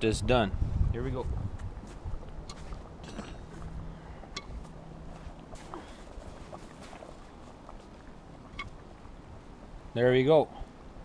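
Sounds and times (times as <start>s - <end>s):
low rumble: 0.0s - 9.9s
wood fire crackling: 1.4s - 10.0s.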